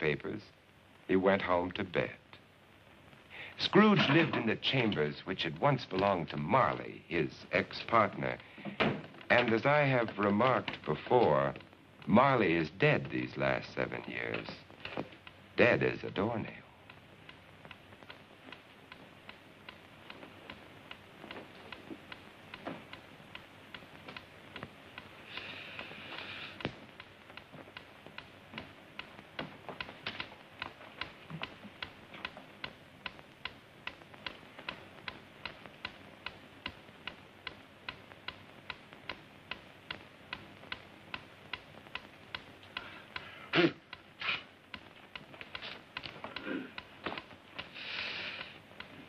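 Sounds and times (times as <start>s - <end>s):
low hiss: 0.0s - 49.0s
clock ticking faintly: 3.5s - 49.0s.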